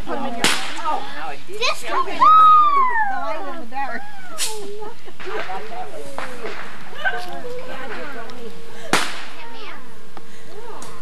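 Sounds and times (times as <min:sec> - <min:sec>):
indistinct voices chattering: 0:00.0 - 0:11.0
sharp crack: 0:00.4 - 0:01.0, 0:04.4 - 0:07.3, 0:07.9 - 0:10.2.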